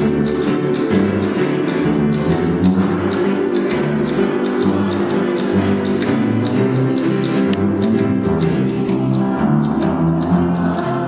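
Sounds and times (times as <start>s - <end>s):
live band playing: 0.0s - 11.0s
low bass notes: 0.0s - 11.0s.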